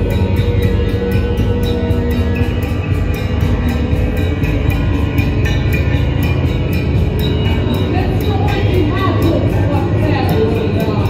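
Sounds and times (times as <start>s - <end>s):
low electronic drone: 0.0s - 11.0s.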